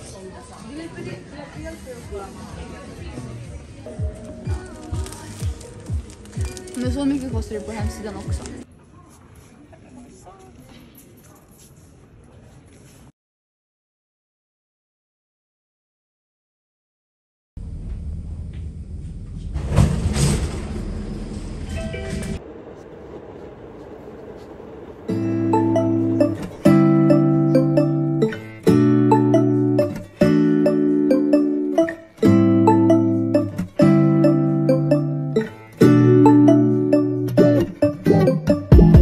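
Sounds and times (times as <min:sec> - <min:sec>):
lofi music: 0:03.9 - 0:08.6, 0:25.1 - 0:39.0
metro train cabin rumble: 0:17.6 - 0:27.7.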